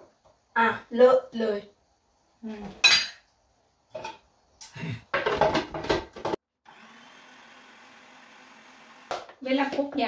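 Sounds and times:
food processor running: 0:06.6 - 0:09.4.

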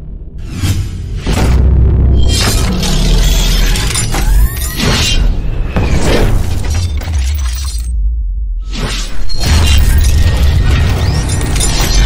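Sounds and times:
heavy bass drone: 0:00.0 - 0:04.2.

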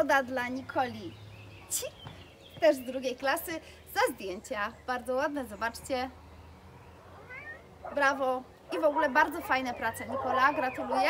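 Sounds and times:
faint rising animal call: 0:06.9 - 0:08.0.

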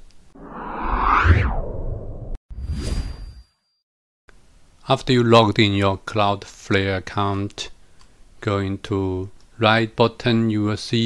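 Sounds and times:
whooshes: 0:00.3 - 0:03.4.

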